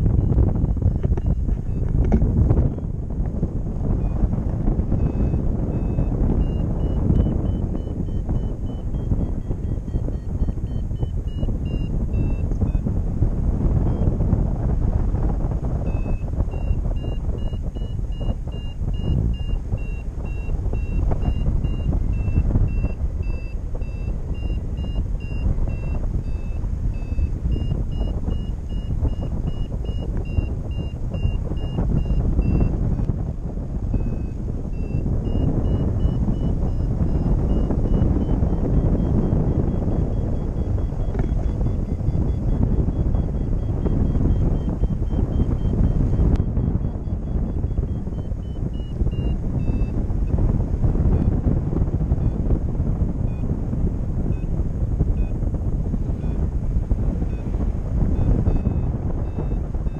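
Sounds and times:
variometer beeping: 0:00.0 - 0:59.9
wind buffeting microphone: 0:00.0 - 0:59.9.

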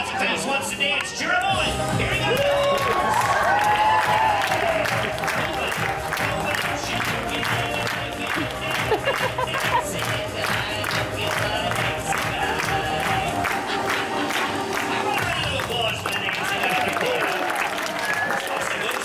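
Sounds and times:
upbeat dance music: 0:00.0 - 0:17.2
audience clapping along: 0:01.0 - 0:19.0.

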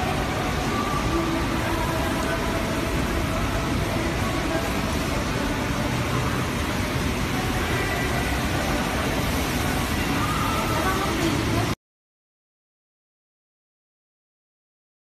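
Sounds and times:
factory workshop background noise: 0:00.0 - 0:11.8.

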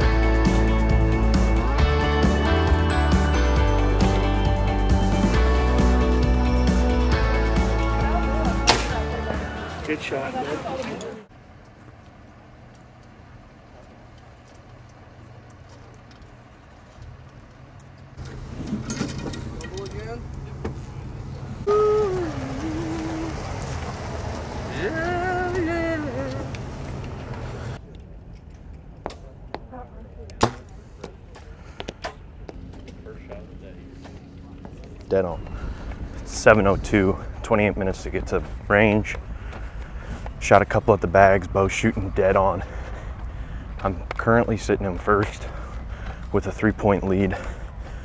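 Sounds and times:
arrows striking target bags: 0:08.7 - 0:09.0, 0:30.4 - 0:30.8
bow shots thwacking: 0:08.7 - 0:09.0, 0:30.4 - 0:30.8.

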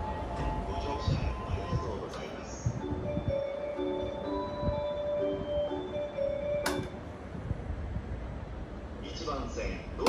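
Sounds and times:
platform departure melody: 0:00.0 - 0:07.6
low platform hum: 0:00.0 - 0:10.0.

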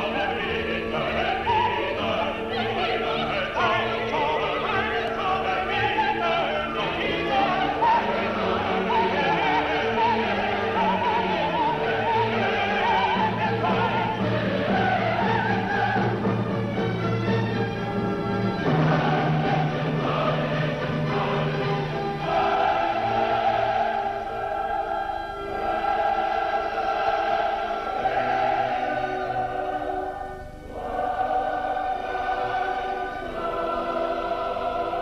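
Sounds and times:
choir and orchestra: 0:00.0 - 0:35.0.

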